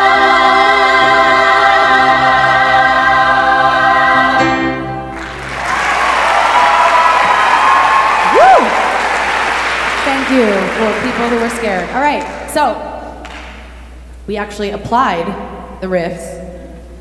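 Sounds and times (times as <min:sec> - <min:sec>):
choir holding a sustained chord: 0:00.0 - 0:05.5
audience applause: 0:05.1 - 0:12.6
person whooping: 0:05.6 - 0:09.5.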